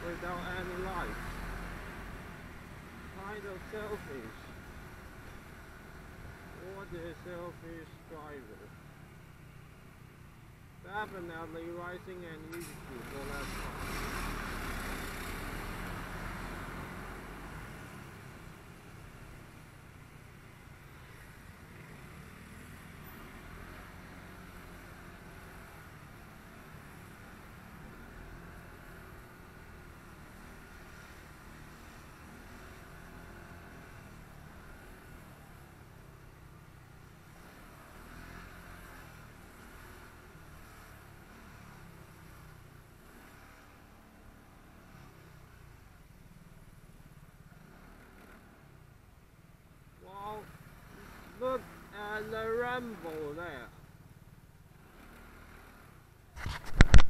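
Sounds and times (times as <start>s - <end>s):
scooter engine and road rumble: 0.0s - 57.0s
traffic noise: 0.0s - 57.0s.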